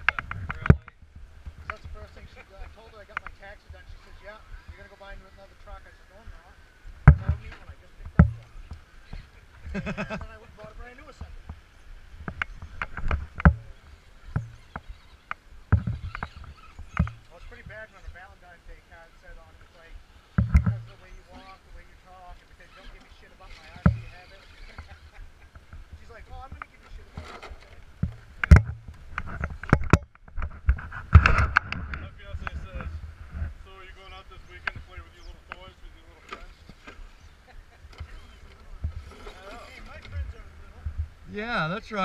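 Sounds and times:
tyres and chassis scraping rock: 0.0s - 6.3s, 7.0s - 42.0s.

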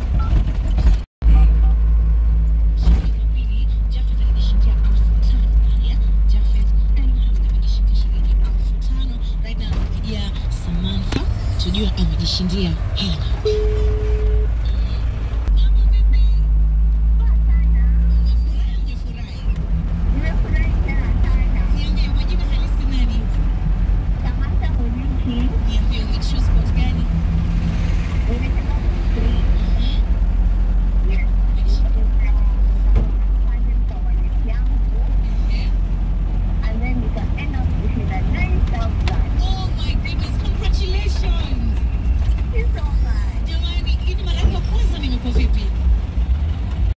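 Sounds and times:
car engine and road noise: 0.0s - 46.9s
people talking: 2.7s - 16.5s, 17.2s - 23.4s, 24.2s - 27.2s, 28.2s - 30.1s, 31.0s - 35.8s, 36.6s - 41.8s, 42.4s - 45.8s.

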